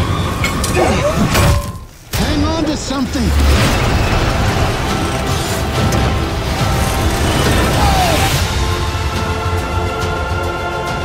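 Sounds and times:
dramatic music: 0.0s - 11.0s
rumbling crashing sound effects: 2.2s - 9.1s.

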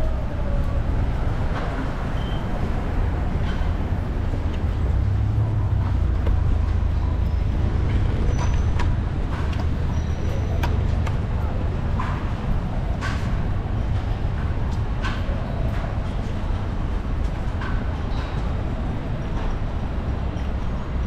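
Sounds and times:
road traffic rumble: 0.0s - 21.0s.

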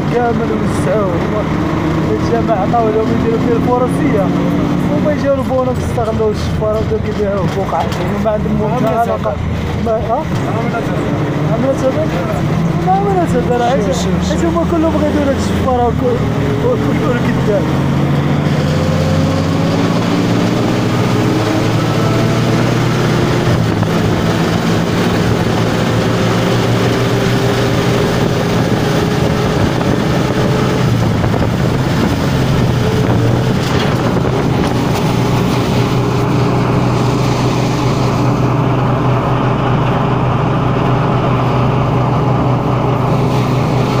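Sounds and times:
wind noise on microphone: 17.7s - 44.0s.

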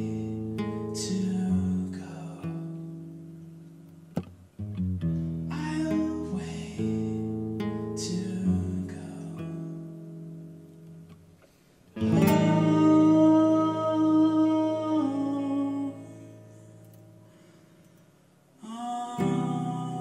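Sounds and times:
acoustic guitar chords strummed: 0.0s - 18.0s, 18.6s - 20.0s.

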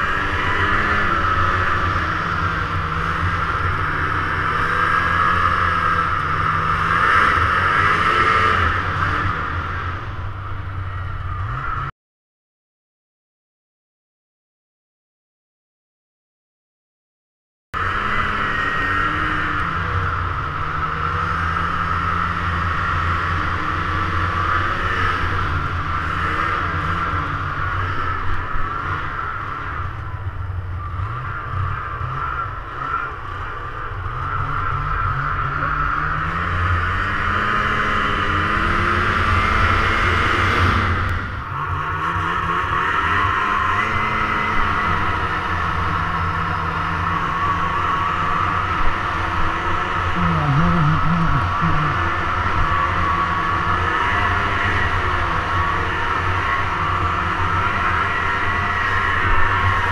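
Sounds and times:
snowmobile engine and track: 0.0s - 11.9s, 17.8s - 59.9s.

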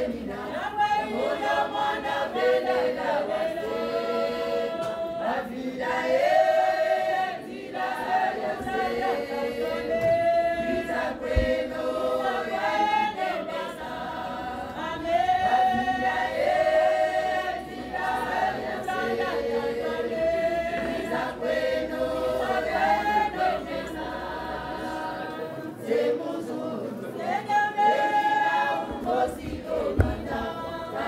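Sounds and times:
group singing chant-like song: 0.0s - 31.0s.

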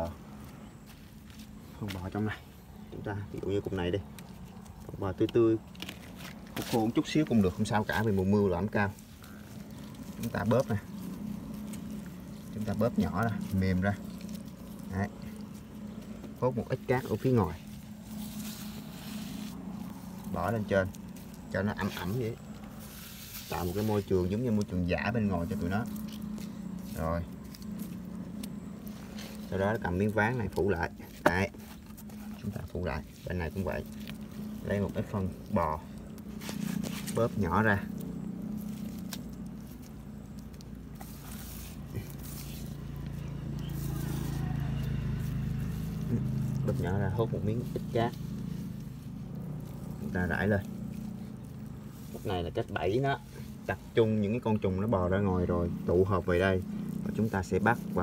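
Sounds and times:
steady low hum: 0.0s - 58.0s.

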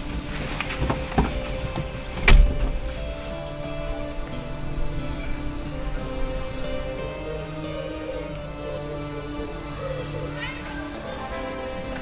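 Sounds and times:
soft background music: 0.0s - 12.0s
car door shutting: 0.6s - 3.1s.

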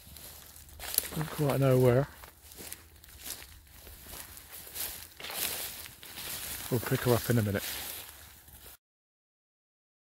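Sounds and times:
footsteps through leafy crop: 0.0s - 8.8s.

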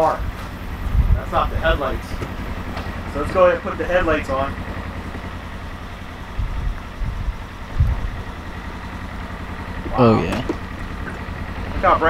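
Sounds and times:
dull low thumps: 0.0s - 4.2s, 5.0s - 8.6s
engine idling: 0.0s - 12.0s.

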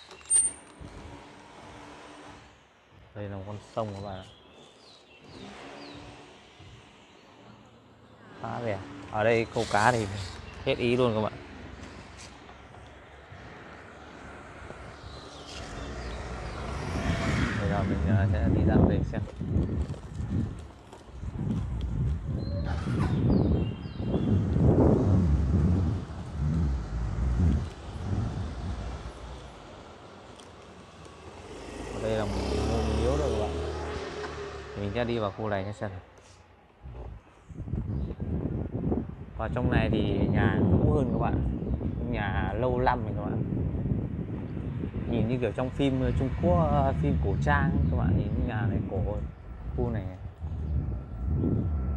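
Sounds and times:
faint outdoor background noise: 0.0s - 51.9s
wind buffeting microphone: 12.7s - 30.2s, 36.8s - 51.9s.

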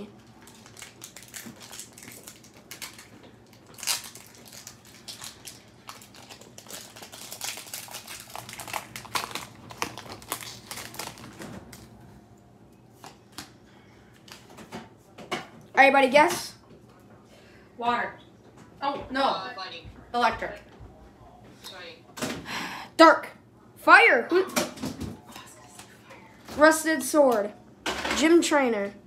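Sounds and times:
foil wrapper crinkling and tearing: 0.2s - 12.0s.

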